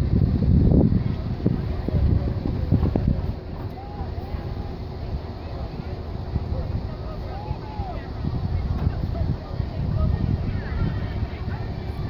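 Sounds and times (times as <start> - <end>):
wind buffeting microphone: 0.0 - 12.0
faint spectator voices: 0.9 - 12.0.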